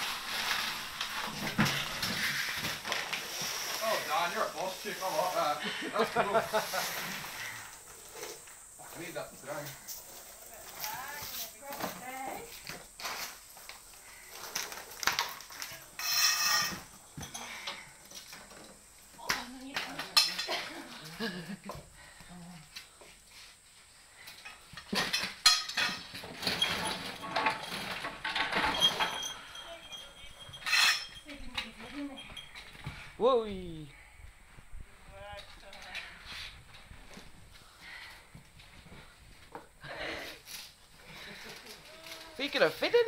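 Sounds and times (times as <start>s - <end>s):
people laughing: 5.6s - 7.2s, 20.5s - 21.7s.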